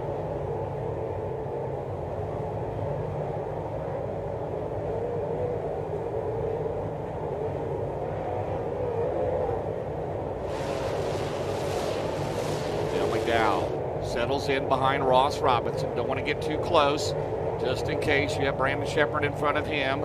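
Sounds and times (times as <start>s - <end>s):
race car engines droning: 10.5s - 20.0s.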